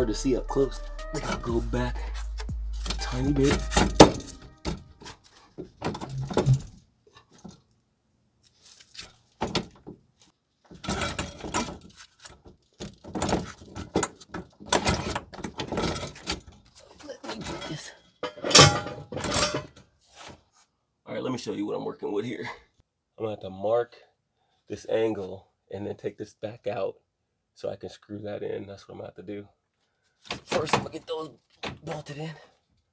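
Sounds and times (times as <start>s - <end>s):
metallic clinks and rattles: 2.2s - 4.9s, 5.8s - 6.8s, 10.8s - 12.1s, 17.4s - 19.9s.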